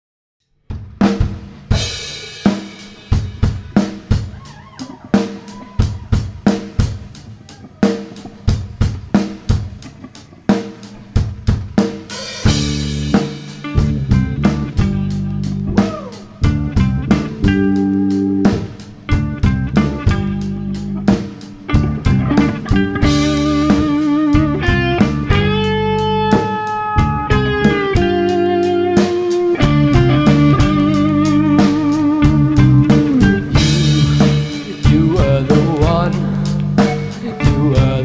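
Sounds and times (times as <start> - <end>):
drum kit: 0.6 - 38.0
bass guitar: 0.7 - 38.0
rock band playing: 0.7 - 38.0
electric guitar: 1.0 - 38.0.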